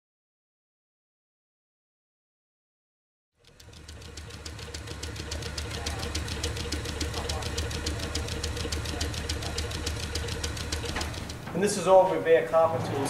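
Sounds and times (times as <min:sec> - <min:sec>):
rapid even ticking: 0:03.4 - 0:11.9
constant tone: 0:03.4 - 0:12.0
lathe humming: 0:03.4 - 0:12.0.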